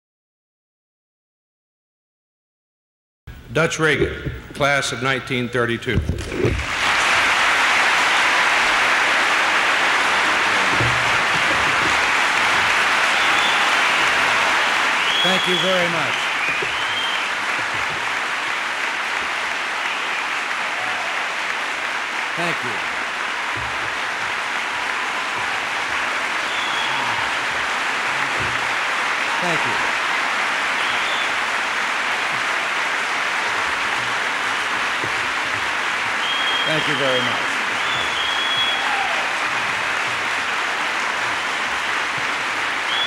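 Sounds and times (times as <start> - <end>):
audience applauding: 6.4 - 43.0.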